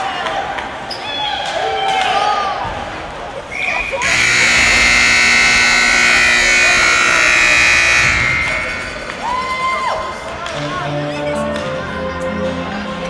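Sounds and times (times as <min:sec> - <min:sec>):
arena horn sounding: 0:04.0 - 0:09.4.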